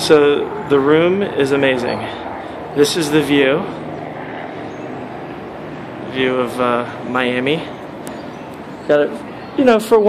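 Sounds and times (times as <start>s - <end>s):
distant traffic rush: 0.0s - 10.0s.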